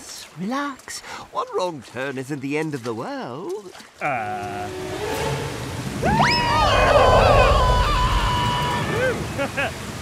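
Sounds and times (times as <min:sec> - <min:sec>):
rushing rumbling noise: 0:04.6 - 0:09.4
cartoon voices screaming: 0:06.0 - 0:09.2.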